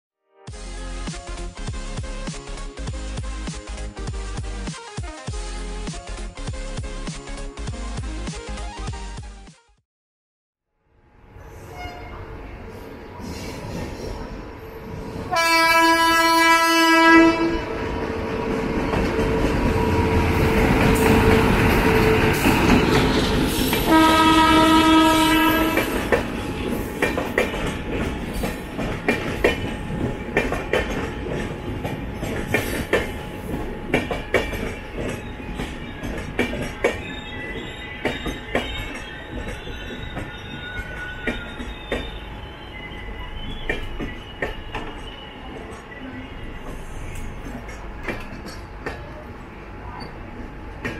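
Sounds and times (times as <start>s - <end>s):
rushing noise of trains: 11.0s - 50.9s
multi-tone train horn blasts: 11.7s - 12.3s, 15.3s - 22.7s, 23.7s - 26.5s.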